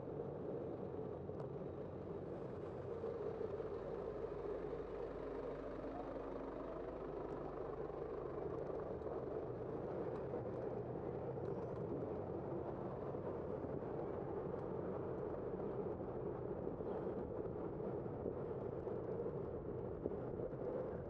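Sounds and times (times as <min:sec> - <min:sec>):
faint engine hum: 0:00.0 - 0:21.0.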